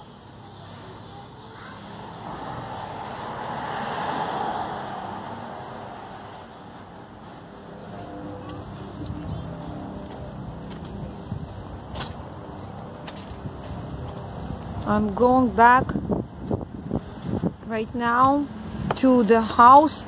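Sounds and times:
car passing: 0.0s - 17.7s
low traffic noise: 0.0s - 20.0s.

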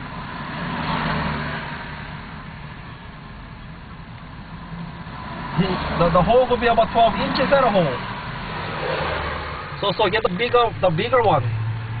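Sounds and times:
car road and engine noise: 0.0s - 12.0s
cars passing: 0.0s - 12.0s.

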